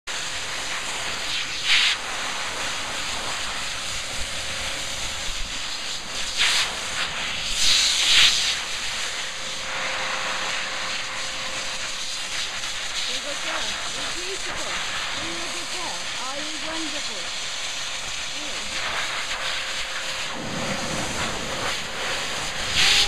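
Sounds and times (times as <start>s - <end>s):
dog grooming dryer blowing air: 0.1s - 23.0s.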